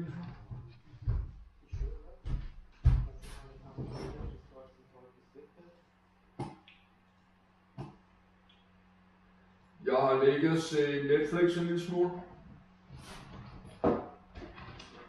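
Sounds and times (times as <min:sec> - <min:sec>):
faint steady hum: 0:00.0 - 0:15.0
heavy footsteps on wooden floor: 0:00.3 - 0:04.4.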